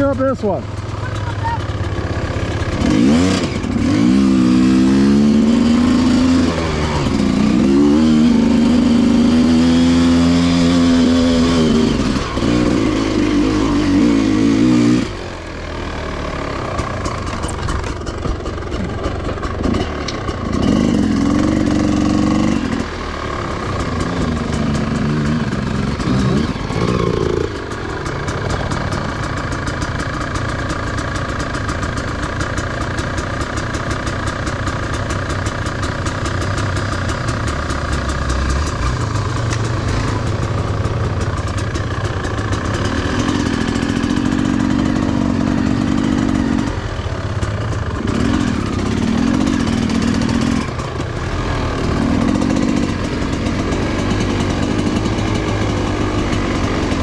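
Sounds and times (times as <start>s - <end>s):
dirt bike engine revving: 0.0s - 30.5s, 36.2s - 57.0s.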